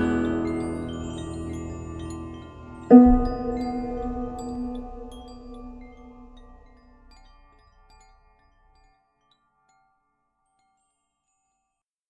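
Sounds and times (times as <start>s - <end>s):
low drone: 0.0s - 7.0s
bell-like chimes: 0.0s - 11.8s.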